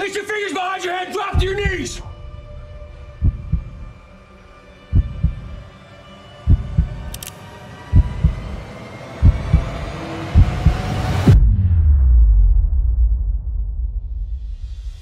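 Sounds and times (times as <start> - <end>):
heartbeat-like low thumps: 1.4 - 4.0, 4.9 - 5.7, 6.5 - 7.1, 7.9 - 8.6, 9.2 - 14.5
steady rising drone: 2.1 - 11.4.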